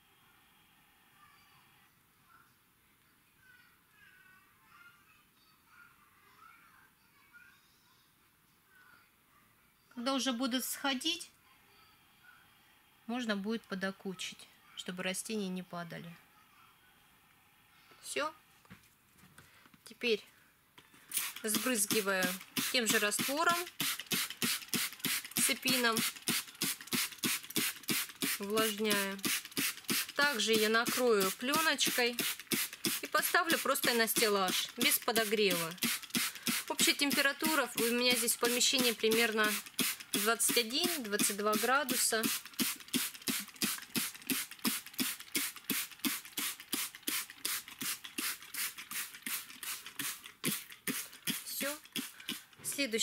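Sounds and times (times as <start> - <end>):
spray bottle hissing: 21.1 - 52.9.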